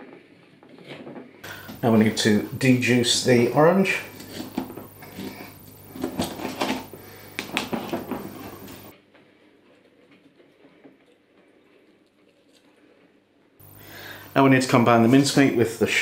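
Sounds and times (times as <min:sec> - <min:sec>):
faint ticks of juicer: 0:03.8 - 0:08.9.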